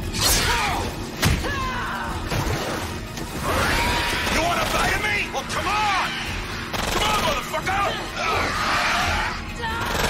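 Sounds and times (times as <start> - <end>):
film score music: 0.0 - 10.0
creatures shrieking: 3.4 - 5.2, 8.2 - 10.0.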